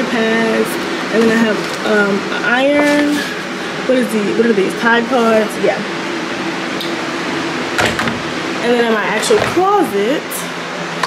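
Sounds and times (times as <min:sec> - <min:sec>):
fans whirring: 0:00.0 - 0:11.0.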